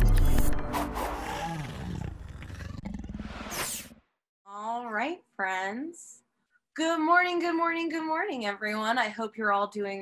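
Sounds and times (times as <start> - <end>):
rough growling roar: 1.1 - 3.5.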